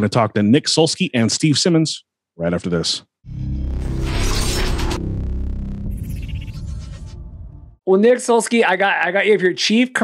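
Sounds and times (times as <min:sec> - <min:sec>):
crashing sound effect: 0:03.3 - 0:07.8
transition music sting: 0:03.3 - 0:07.8.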